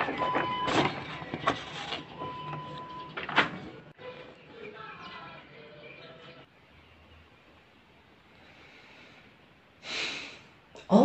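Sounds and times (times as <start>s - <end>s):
paper rustling and crinkling: 0.7s - 2.1s.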